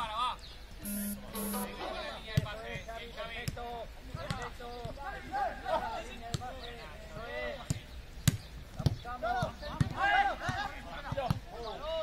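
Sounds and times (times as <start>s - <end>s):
players shouting: 9.2s - 12.0s.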